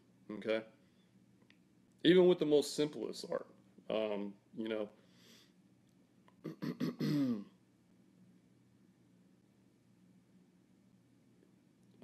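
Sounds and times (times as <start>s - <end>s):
man clearing throat: 6.4s - 7.6s.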